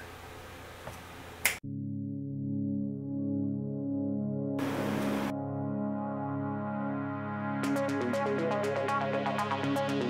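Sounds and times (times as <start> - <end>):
finger snap: 1.4 - 1.6
ambient synthesizer music: 1.6 - 10.0.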